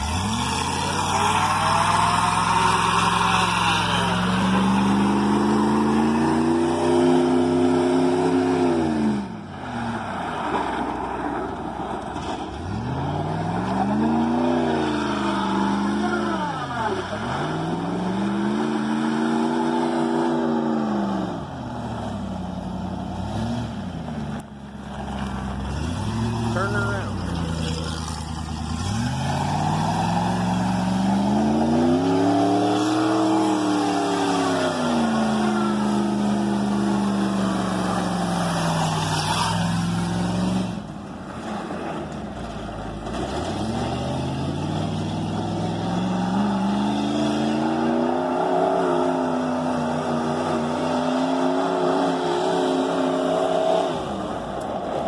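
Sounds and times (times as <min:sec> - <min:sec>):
truck engine revving: 0:00.0 - 0:55.0.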